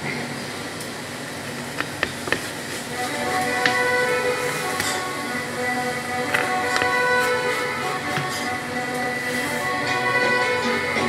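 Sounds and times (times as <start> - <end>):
music from a radio: 3.0 - 11.0.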